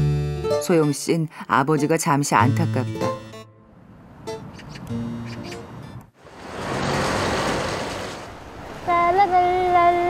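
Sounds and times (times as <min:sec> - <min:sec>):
vehicle passing: 0:03.6 - 0:10.0.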